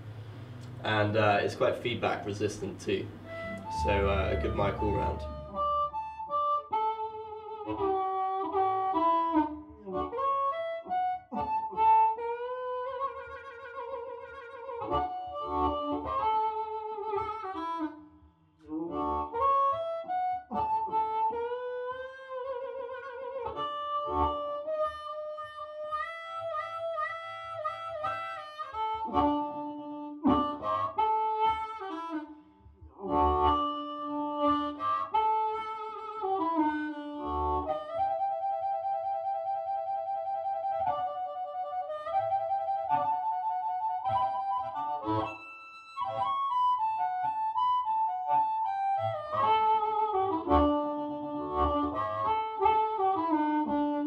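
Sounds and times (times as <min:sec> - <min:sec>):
amplified blues harmonica: 0:00.0 - 0:54.0.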